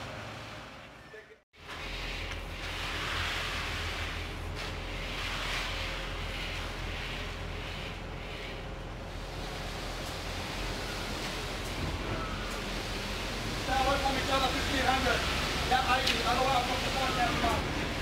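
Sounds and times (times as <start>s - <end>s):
bull float swishing on wet concrete: 1.6s - 8.4s.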